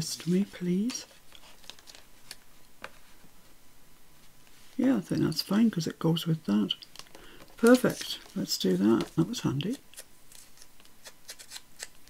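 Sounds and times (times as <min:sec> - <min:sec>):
paper rustling: 0:00.0 - 0:03.2, 0:07.0 - 0:09.4.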